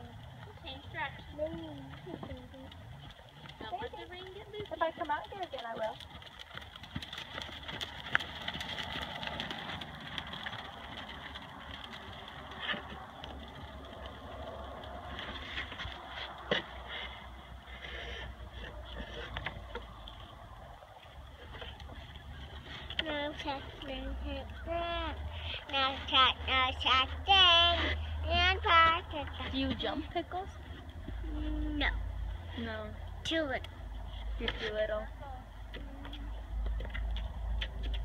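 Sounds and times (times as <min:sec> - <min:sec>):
low steady rumble: 0:00.0 - 0:38.0
hoofbeats in sand: 0:01.3 - 0:19.3.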